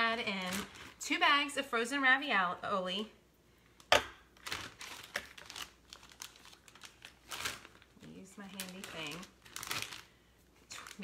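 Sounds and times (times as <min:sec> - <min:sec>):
plastic bag crinkling: 0:00.0 - 0:01.2, 0:04.3 - 0:11.0.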